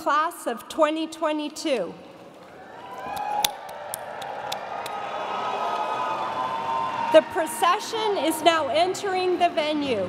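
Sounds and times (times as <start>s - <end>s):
audience cheering and applauding: 2.5s - 7.4s
sharp claps: 3.1s - 5.1s.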